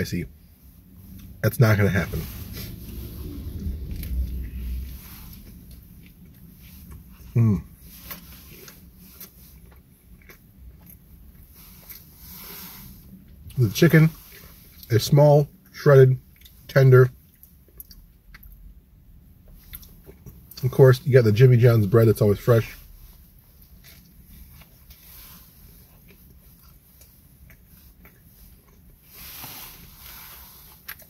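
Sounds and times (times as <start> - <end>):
man chewing a sandwich: 2.5 - 20.6, 22.8 - 31.0
person chewing with mouth closed: 2.7 - 12.1, 17.2 - 18.7.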